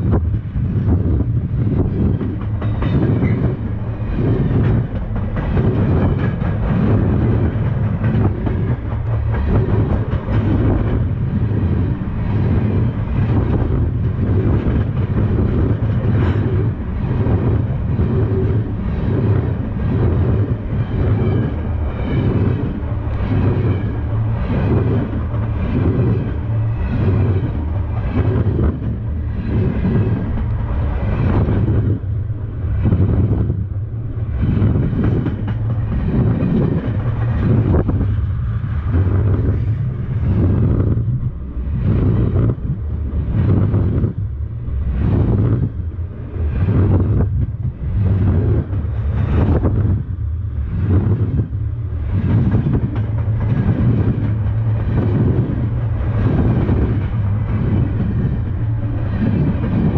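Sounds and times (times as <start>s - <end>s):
clickety-clack over rail joints: 0.0s - 59.9s
train wheels rumbling on rails: 0.0s - 59.9s.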